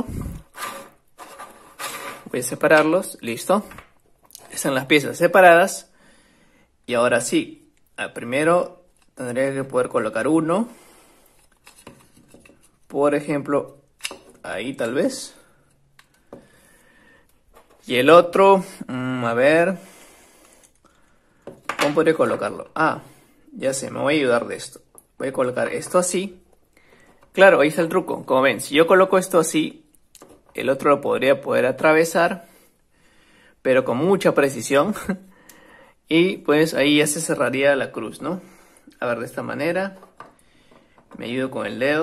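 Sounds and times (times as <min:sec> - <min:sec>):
wooden sticks rubbing and sliding: 0:00.0 - 0:03.8, 0:10.6 - 0:13.8.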